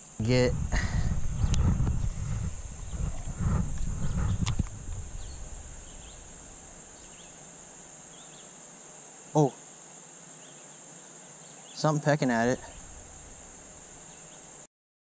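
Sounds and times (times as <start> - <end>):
high-pitched insect chorus: 0.0 - 14.7
camera handling rumble: 0.5 - 6.2.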